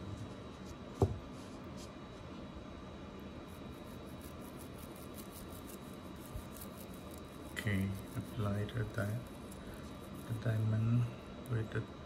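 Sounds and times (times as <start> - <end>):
toothbrush scrubbing ring: 3.5 - 10.8.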